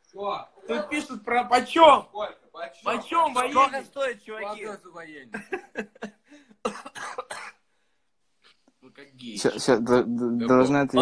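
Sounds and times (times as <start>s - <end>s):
person coughing: 6.6s - 7.7s.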